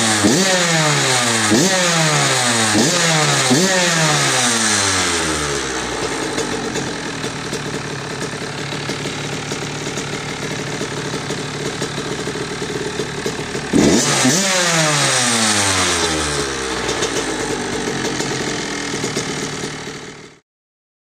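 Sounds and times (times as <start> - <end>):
two-stroke engine idling and revving: 0.0 - 20.4.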